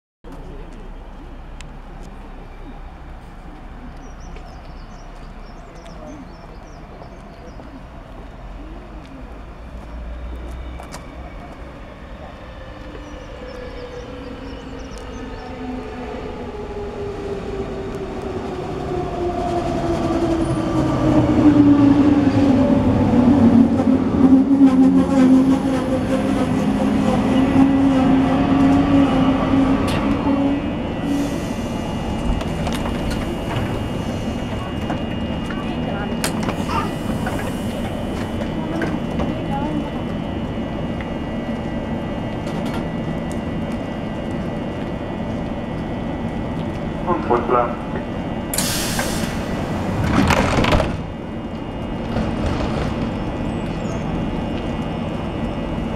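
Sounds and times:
train standing with high hum: 0.3 - 55.9.

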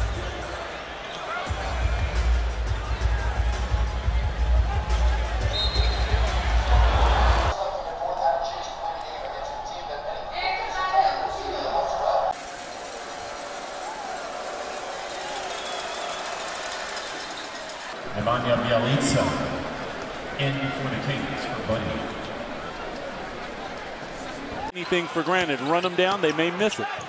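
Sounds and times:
crowd noise: 0.0 - 27.0
voices: 4.8 - 12.4.

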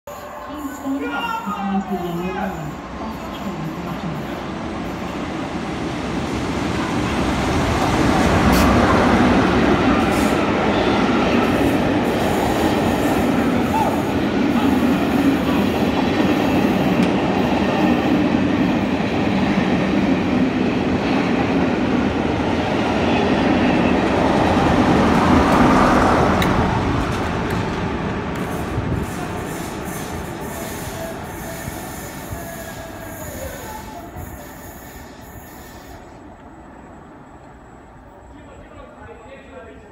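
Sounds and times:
diesel locomotive passing: 0.1 - 39.9
train wheels on rails: 0.2 - 36.6.

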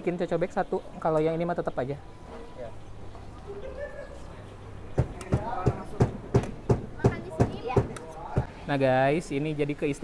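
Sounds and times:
sharp knocks: 5.0 - 8.5.

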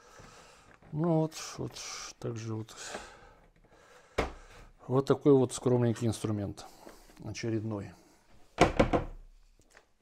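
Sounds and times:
plastic tool case knocking: 8.6 - 9.3.

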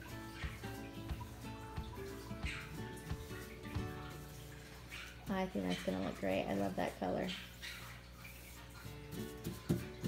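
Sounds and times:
background music with held notes: 0.0 - 6.3, 8.3 - 10.0.

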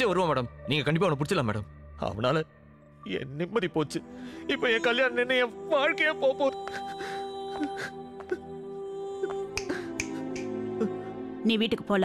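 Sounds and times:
sharp snap-like clicks: 9.3 - 10.6.

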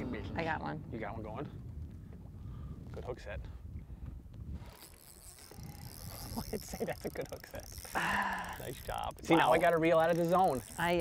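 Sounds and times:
wind rumble on microphone: 0.0 - 6.8
fishing reel whirring: 4.5 - 11.0.

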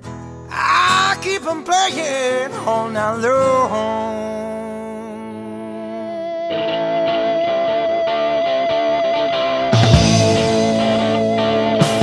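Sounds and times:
guitar picking quick notes: 0.0 - 12.0
instrumental hard rock: 6.2 - 12.0.

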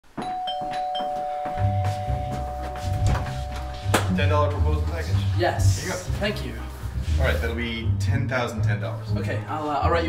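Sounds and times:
two-note doorbell chime: 0.2 - 4.4
low bass notes: 2.1 - 10.0.

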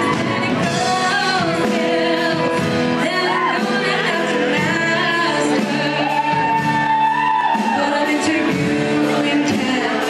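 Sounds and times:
drum kit: 0.0 - 10.0
keyboard: 0.0 - 10.0
woman singing: 0.0 - 10.0.

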